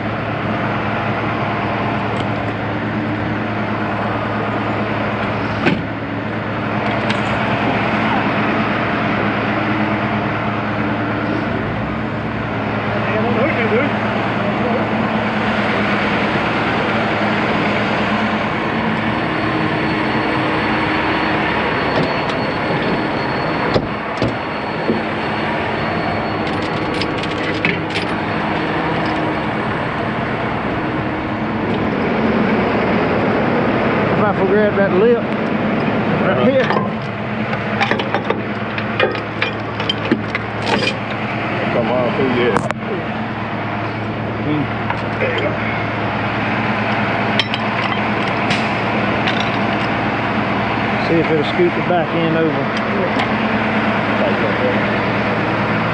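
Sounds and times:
diesel engine running: 0.0s - 55.9s
metal chains clinking: 26.4s - 29.4s, 37.8s - 41.2s, 47.4s - 48.3s, 49.2s - 49.9s.

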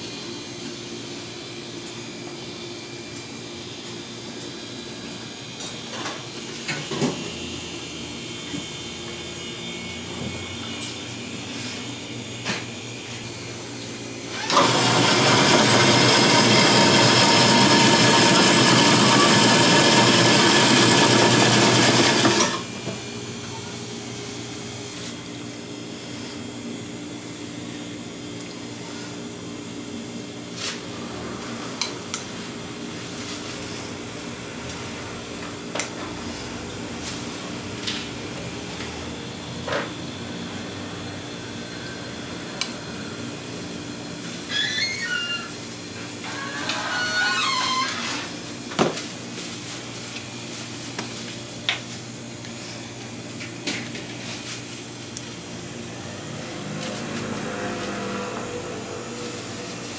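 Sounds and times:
ice shaving machine running: 0.2s - 48.6s, 53.0s - 59.9s.

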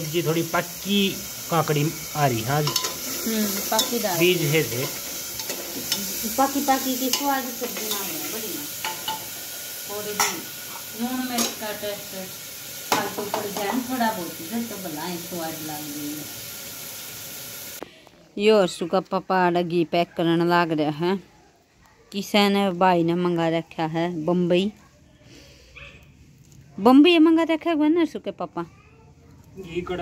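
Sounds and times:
oil sizzling in a pan: 0.0s - 17.8s
spoon clinking against pan: 2.6s - 3.0s, 7.1s - 9.4s, 10.2s - 11.6s.

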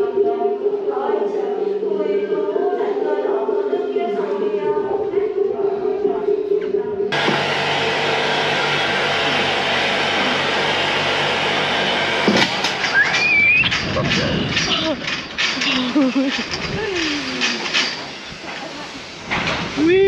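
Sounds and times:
steady drone: 4.6s - 15.2s
short rising squeal: 12.8s - 13.8s
wind rushing over microphone: 13.3s - 15.1s, 16.4s - 17.4s.

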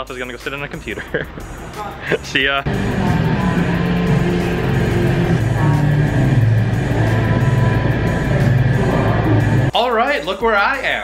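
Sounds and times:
pop dance music: 1.6s - 10.7s.

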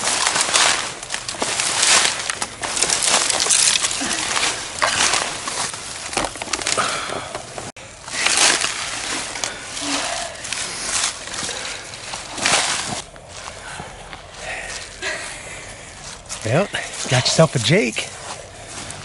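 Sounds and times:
brushing through twigs: 0.0s - 7.1s, 8.0s - 13.8s
footsteps crunching through dry leaves: 0.0s - 7.1s, 7.8s - 19.0s
person speaking: 16.4s - 18.2s.

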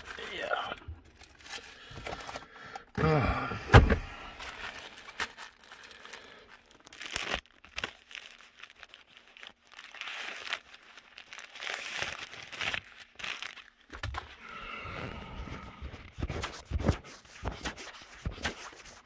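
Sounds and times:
crinkling and rustling: 0.0s - 3.0s, 3.7s - 14.4s.

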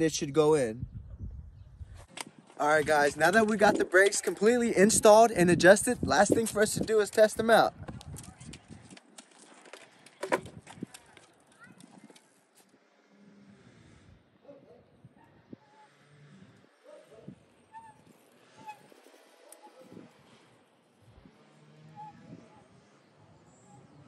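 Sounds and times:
outdoor ambience: 0.0s - 24.0s
bike knocking and rattling: 7.8s - 12.3s.

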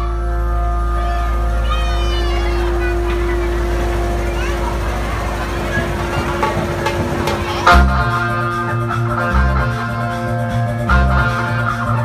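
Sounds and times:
amplified band holding a note: 0.0s - 12.0s
crowd voices: 0.0s - 12.0s
deep bass hum: 0.0s - 12.0s.

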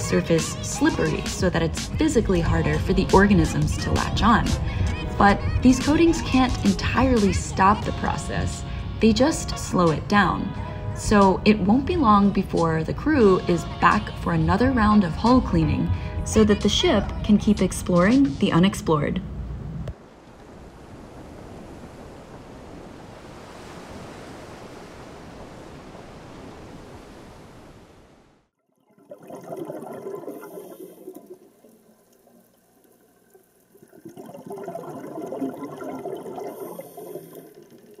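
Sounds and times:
muffled surging water: 0.0s - 13.2s, 19.3s - 28.5s
sea water washing: 28.9s - 38.0s.

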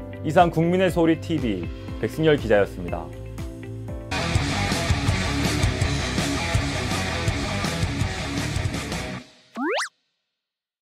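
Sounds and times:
upward sweeping sound effect: 9.6s - 9.9s.

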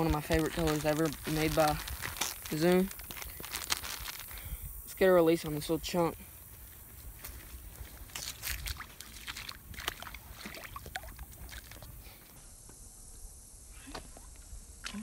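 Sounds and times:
shallow water splashing: 8.2s - 11.9s.

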